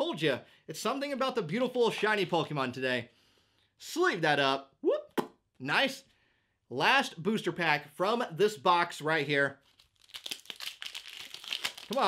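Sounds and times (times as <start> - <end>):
foil wrapper crinkling and tearing: 9.6 - 12.0.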